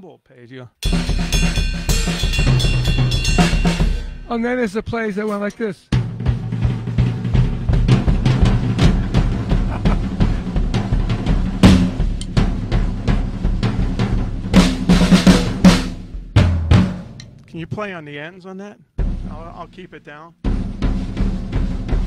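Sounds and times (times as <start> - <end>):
loud cymbal crashes: 0.8 - 4.4
snare and bass drum strokes: 0.8 - 17.9, 19.0 - 22.0.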